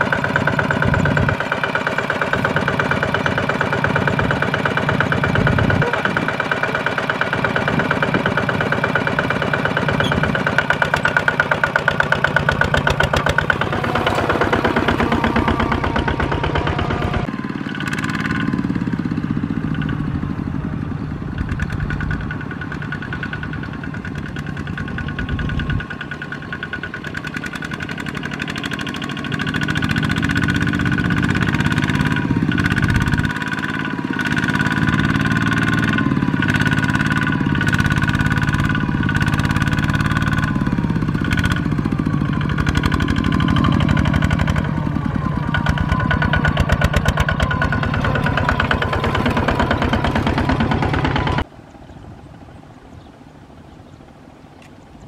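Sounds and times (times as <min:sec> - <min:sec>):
diesel engine chugging: 0:00.0 - 0:55.0.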